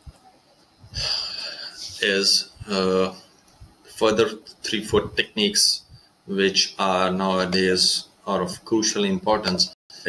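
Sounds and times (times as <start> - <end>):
man breathing in through mouth: 0.9 - 2.0.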